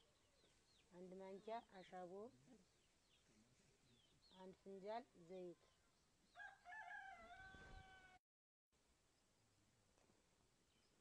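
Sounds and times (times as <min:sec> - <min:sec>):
rooster crowing: 0:06.4 - 0:08.2.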